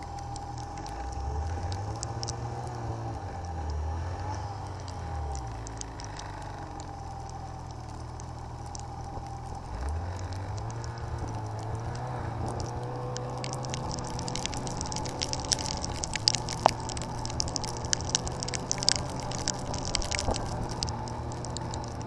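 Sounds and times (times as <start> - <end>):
light ticks: 0.0 - 22.0
snowmobile engine running: 0.0 - 22.0.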